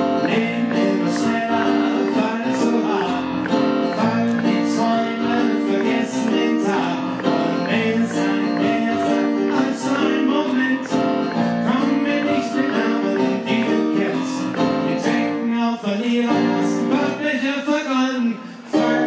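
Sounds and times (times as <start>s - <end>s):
piano chords over a beat: 0.0s - 17.8s, 18.7s - 19.0s.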